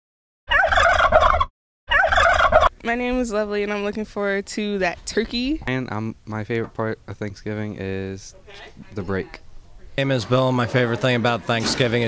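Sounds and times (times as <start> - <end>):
turkey gobbling: 0.5 - 2.8.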